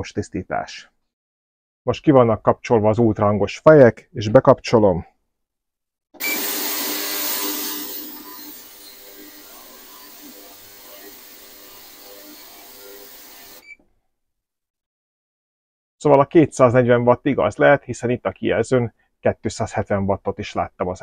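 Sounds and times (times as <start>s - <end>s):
ultrasonic cleaner hissing: 6.2s - 13.7s.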